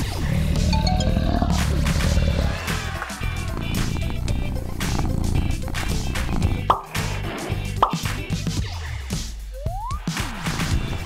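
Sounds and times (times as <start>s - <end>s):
upbeat background music: 0.6s - 11.0s
rising cartoon bloop: 0.7s - 2.1s.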